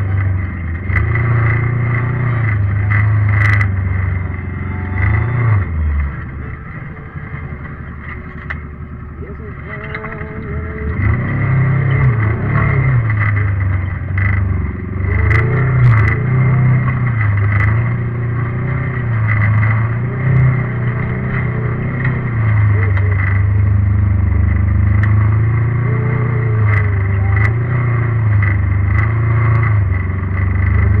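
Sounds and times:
off-road vehicle engine running: 0:00.0 - 0:31.0
sharp clicks and knocks: 0:00.0 - 0:31.0.

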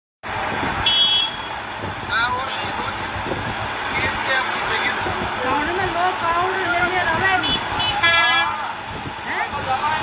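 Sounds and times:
heavy trucks rumbling: 0:00.2 - 0:10.0
street noise: 0:00.2 - 0:10.0.

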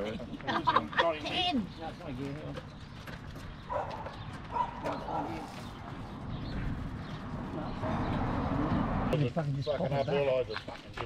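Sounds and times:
bus passing: 0:06.0 - 0:10.1.

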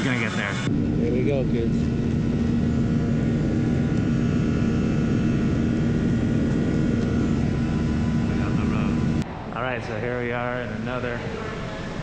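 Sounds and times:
airliner cabin engine rush: 0:00.0 - 0:12.0
faint whining tones: 0:00.0 - 0:12.0.

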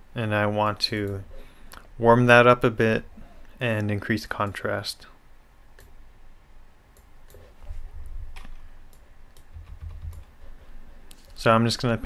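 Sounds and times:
keyboard and mouse clicks: 0:08.3 - 0:10.4.

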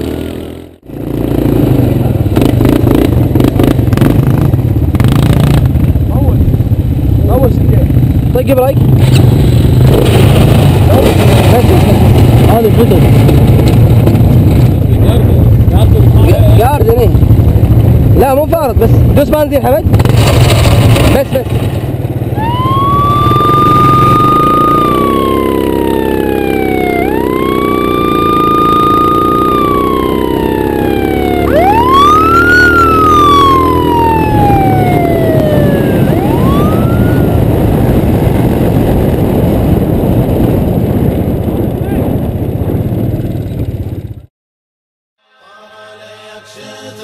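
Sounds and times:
quad bike engines running: 0:00.0 - 0:44.3
siren wailing: 0:22.3 - 0:37.7.

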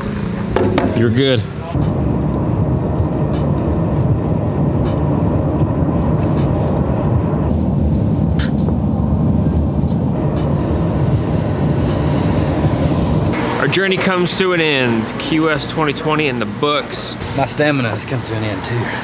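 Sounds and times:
car road and engine rumble: 0:00.0 - 0:19.0.

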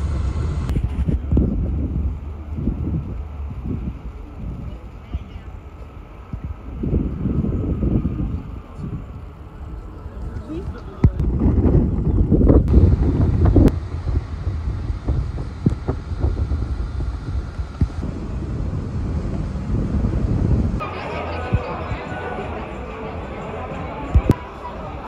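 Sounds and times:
low rumble: 0:00.0 - 0:25.0
wind buffeting microphone: 0:00.0 - 0:25.0
indistinct voices: 0:20.8 - 0:25.0.

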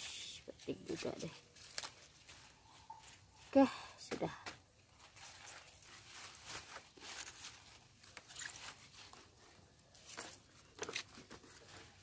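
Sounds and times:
lettuce leaves rustling: 0:00.2 - 0:04.0, 0:04.7 - 0:12.0.

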